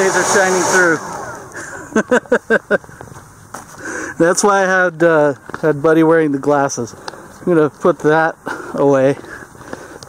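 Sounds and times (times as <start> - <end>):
person laughing: 1.5 - 3.0.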